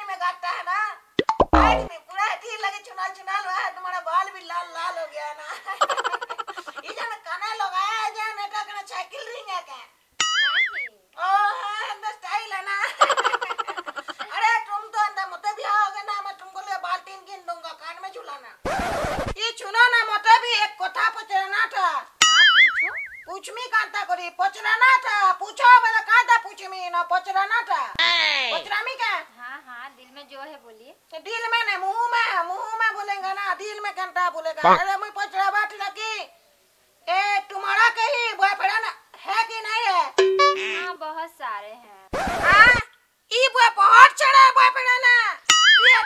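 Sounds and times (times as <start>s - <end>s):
comic sound effect: 1.2s - 1.9s, 40.2s - 40.9s, 42.2s - 42.8s
person speaking: 1.2s - 1.9s, 34.6s - 34.8s, 40.2s - 41.0s
person talking: 34.6s - 34.9s, 40.2s - 41.0s.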